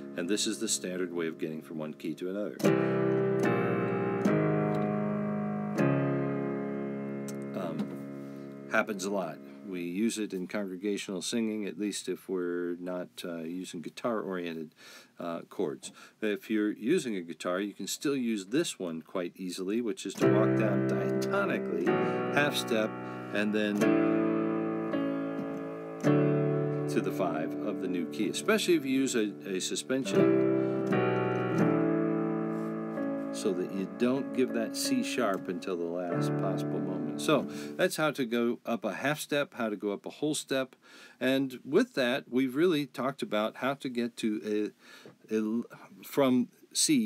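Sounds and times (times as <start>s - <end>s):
keyboard chords: 0.0s - 2.0s, 2.6s - 9.7s, 20.2s - 37.8s.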